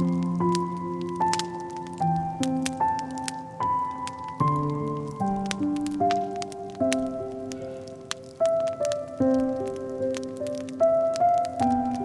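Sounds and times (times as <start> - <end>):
slow soft piano music: 0.0 - 12.0
wood fire crackling: 0.0 - 12.0.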